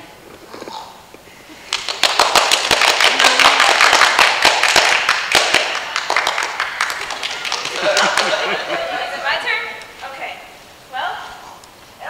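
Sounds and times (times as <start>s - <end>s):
audience applauding: 1.7s - 9.7s.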